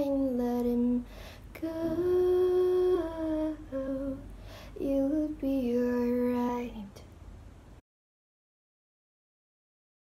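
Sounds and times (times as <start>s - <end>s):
woman singing: 0.0s - 7.0s.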